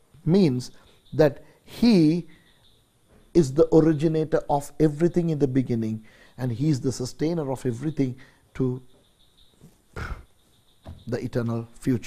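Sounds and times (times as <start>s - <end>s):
man breathing: 6.0s - 6.4s.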